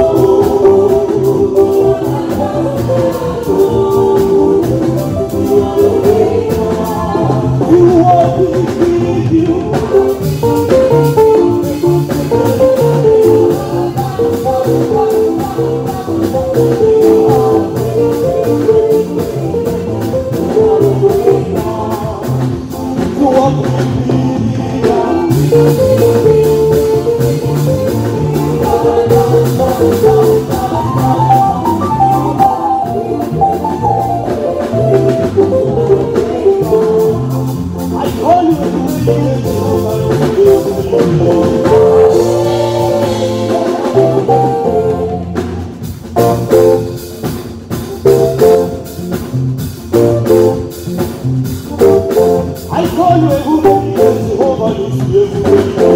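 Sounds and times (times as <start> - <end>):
bass line: 0.0 - 55.9
electronic keyboard lead: 0.0 - 55.9
percussion: 0.0 - 55.9.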